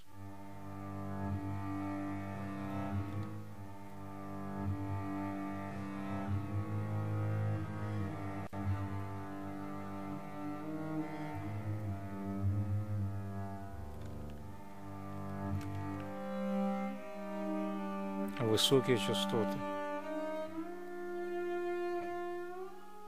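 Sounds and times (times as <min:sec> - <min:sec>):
low bowed bass notes: 0:00.0 - 0:23.0.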